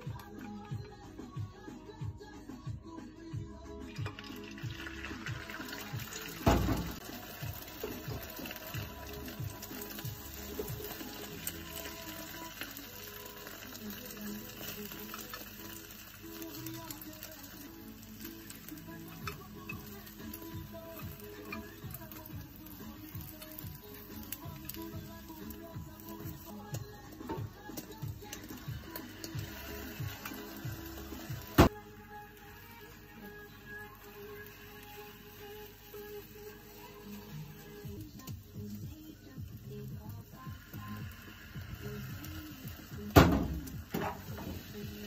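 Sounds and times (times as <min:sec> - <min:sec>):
background music with a beat: 0:00.0 - 0:45.0
egg frying in a pan: 0:03.9 - 0:45.0.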